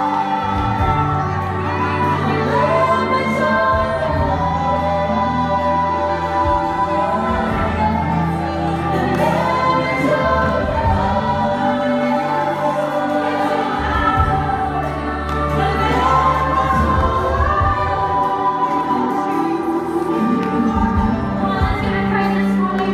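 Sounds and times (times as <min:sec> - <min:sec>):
choir singing: 0:00.0 - 0:22.9
female lead singers: 0:00.0 - 0:22.9
keyboard: 0:00.0 - 0:22.9.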